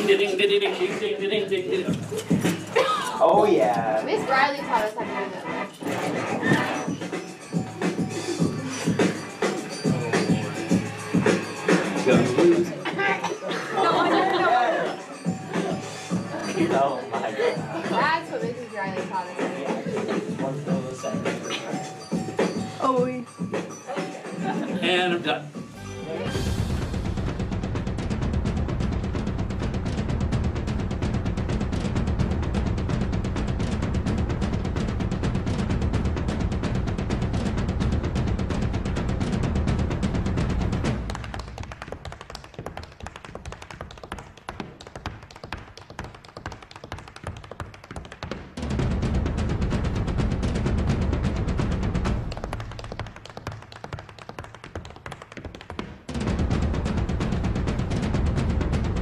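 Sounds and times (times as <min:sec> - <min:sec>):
step-dance music with drumming: 0:00.0 - 0:25.8, 0:26.7 - 0:59.0
rapid hard-shoe tapping: 0:28.8 - 0:59.0.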